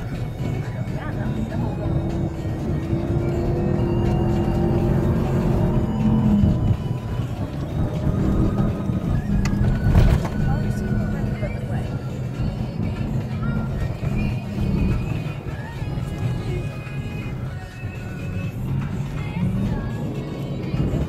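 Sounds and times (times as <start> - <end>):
engine and tyres rumbling: 0.0 - 21.0
music playing in car cabin: 0.0 - 21.0.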